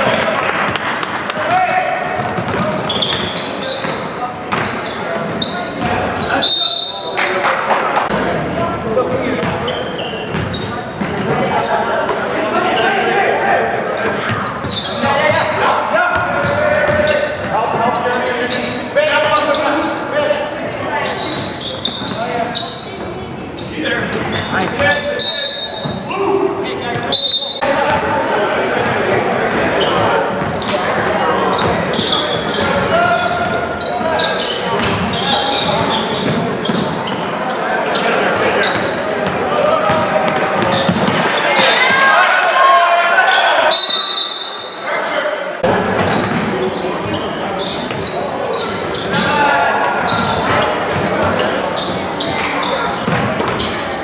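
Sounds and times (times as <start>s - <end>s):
indistinct voices in a hall: 0.0s - 54.0s.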